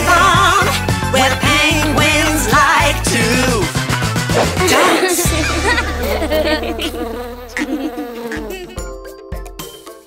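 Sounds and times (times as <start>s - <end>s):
cartoon bee buzzing: 4.4s - 9.0s.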